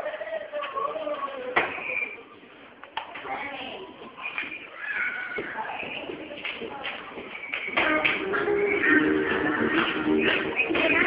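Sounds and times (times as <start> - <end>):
children chattering and calling out: 0.0 - 8.0.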